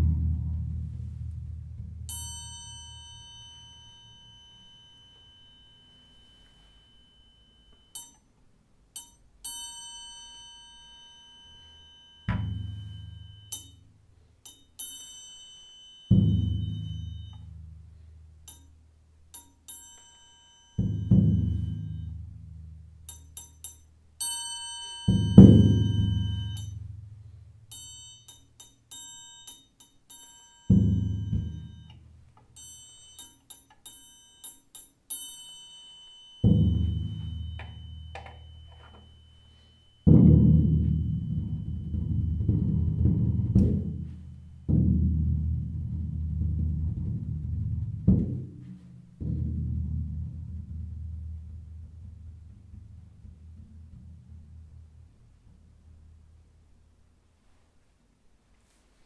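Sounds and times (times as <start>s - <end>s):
deep booming drum strokes: 0.0s - 2.2s
high-pitched ringing taps: 2.1s - 17.6s, 18.4s - 22.2s, 23.1s - 26.9s, 27.7s - 42.6s.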